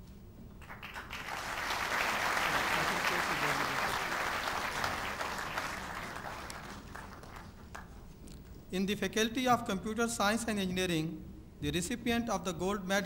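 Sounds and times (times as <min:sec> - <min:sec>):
audience applauding: 0:00.6 - 0:08.0.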